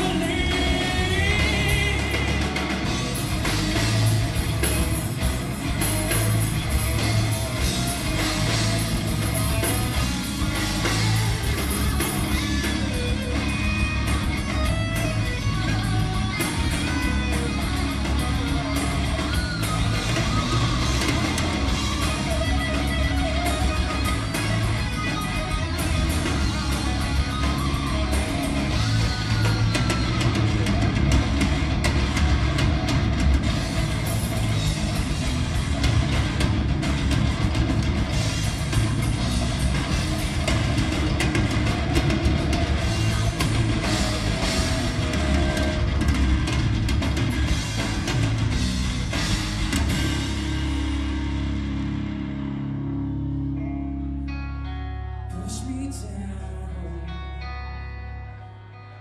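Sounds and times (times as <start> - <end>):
live rock band playing: 0.0 - 59.0.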